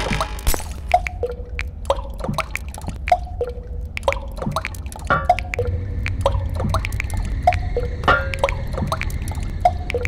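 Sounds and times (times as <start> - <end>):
water drops plinking: 0.0 - 10.0
steady low rumble: 0.9 - 10.0.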